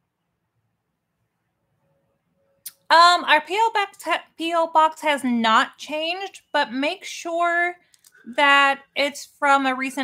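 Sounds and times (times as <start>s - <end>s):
woman speaking: 2.7s - 10.0s.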